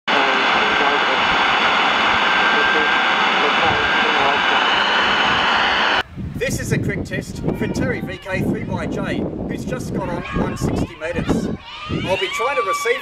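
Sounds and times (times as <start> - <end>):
faint radio voice: 0.1 - 1.3, 2.4 - 4.7
radio hiss: 0.1 - 6.0.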